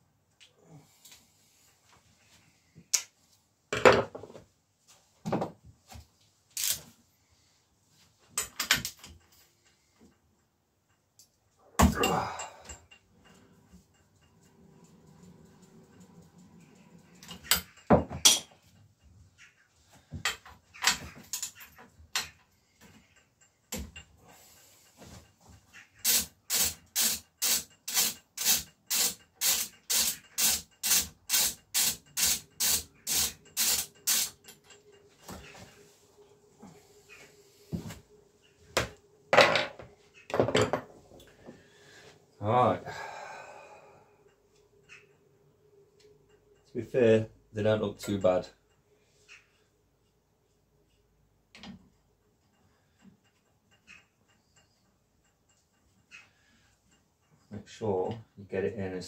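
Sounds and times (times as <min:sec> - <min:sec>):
metal tools knocking and clanking: 0:03.7 - 0:04.4, 0:08.4 - 0:09.6, 0:11.8 - 0:18.9, 0:20.1 - 0:25.1, 0:38.7 - 0:41.4
quick regular tool strokes: 0:26.0 - 0:34.6.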